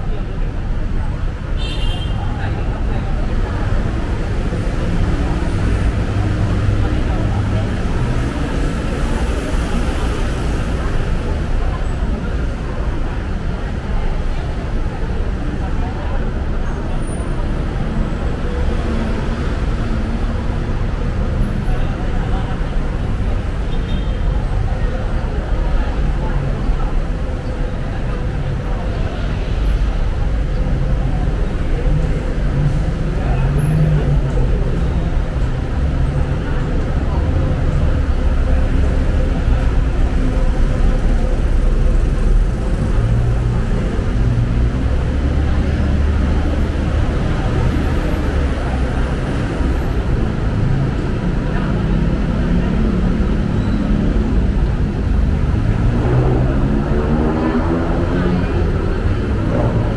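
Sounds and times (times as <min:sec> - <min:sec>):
road traffic rumble: 0:00.0 - 0:59.9.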